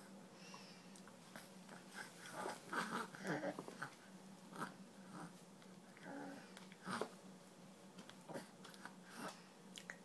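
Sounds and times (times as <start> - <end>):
baby chewing and smacking: 9.7 - 10.0.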